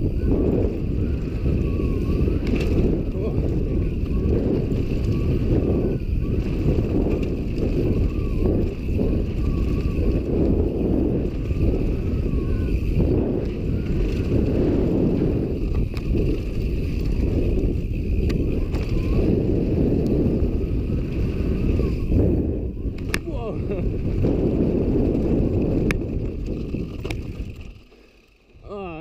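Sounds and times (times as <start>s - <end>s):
bike clicks and rattles: 0.0s - 28.8s
wind rushing on microphone: 0.0s - 29.0s.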